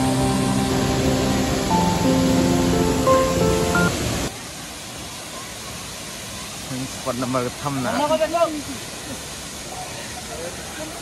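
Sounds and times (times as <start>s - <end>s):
waterfall rushing hiss: 0.0s - 11.0s.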